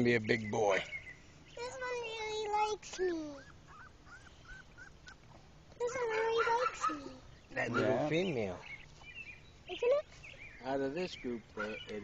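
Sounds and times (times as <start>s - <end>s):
puppy whimpering: 3.3s - 5.2s, 5.9s - 8.1s.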